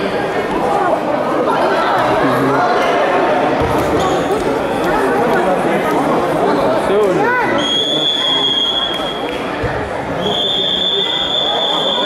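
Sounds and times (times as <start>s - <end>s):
voices in a sports hall: 0.0s - 12.0s.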